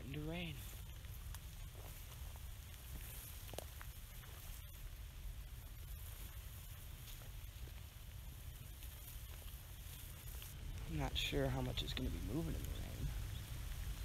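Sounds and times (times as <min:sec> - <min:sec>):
light rain hiss: 0:00.0 - 0:14.0
wind rumbling on microphone: 0:00.0 - 0:14.0.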